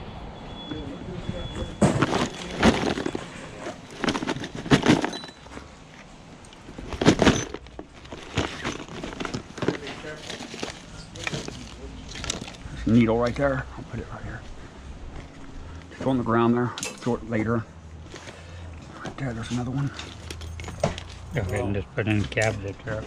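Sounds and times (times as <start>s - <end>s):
plastic items rattling in a tote: 1.8s - 5.6s, 6.7s - 12.8s.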